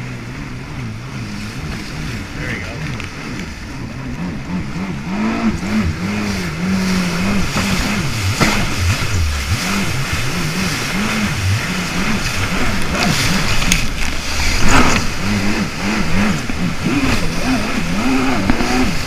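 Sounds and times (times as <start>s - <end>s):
jet ski engine running: 0.0s - 19.0s
water rushing and splashing: 0.0s - 19.0s.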